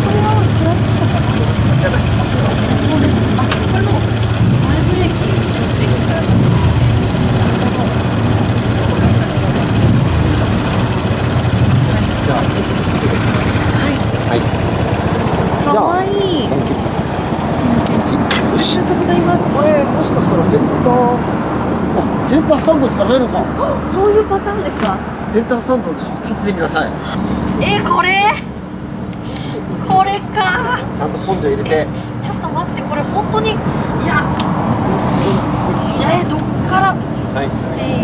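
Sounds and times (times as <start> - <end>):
faint voices: 0.0 - 28.5
engine hum: 0.0 - 38.0.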